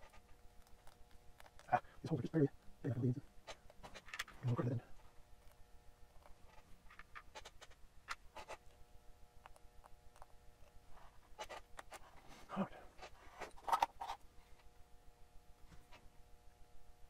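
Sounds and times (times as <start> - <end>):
fingers handling circuit board: 0.0 - 1.9, 3.4 - 8.8, 9.4 - 12.2, 13.0 - 14.2
faint steady hum: 0.0 - 17.0.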